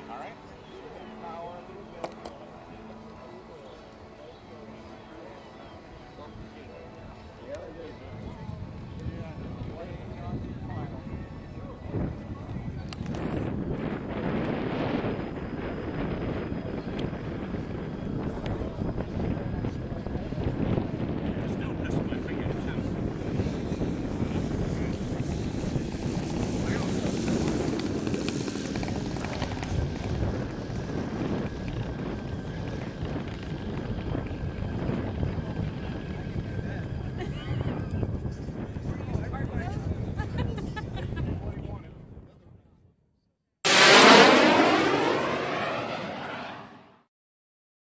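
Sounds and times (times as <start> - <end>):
model airplane engine running: 0.0 - 40.2.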